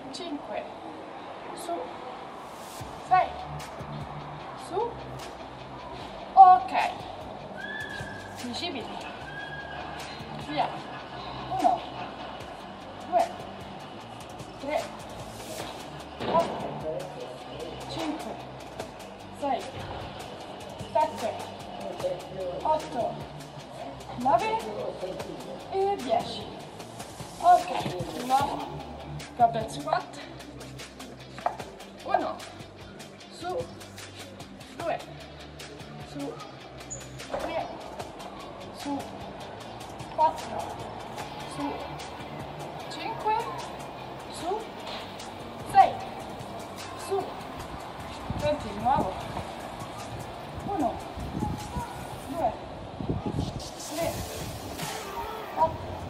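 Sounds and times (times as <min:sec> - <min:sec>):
background music with beat: 0:02.6 - 0:56.0
woman breathing with effort: 0:05.8 - 0:06.3.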